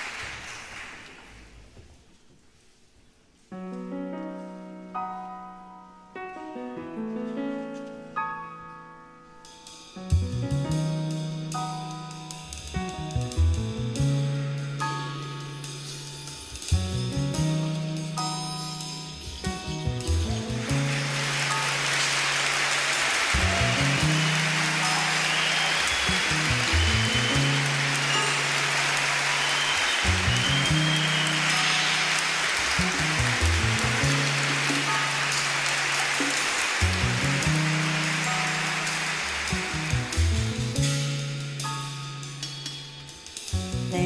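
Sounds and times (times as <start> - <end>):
jazz orchestra with strings and piano: 3.5 - 44.0
low bass figure: 32.8 - 34.6.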